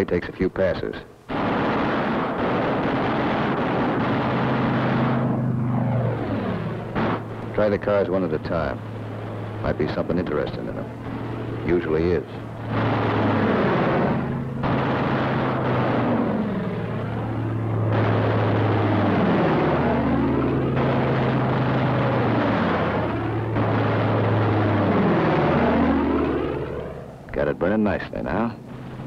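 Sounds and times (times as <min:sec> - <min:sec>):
piston aircraft engines droning: 0:00.0 - 0:29.0.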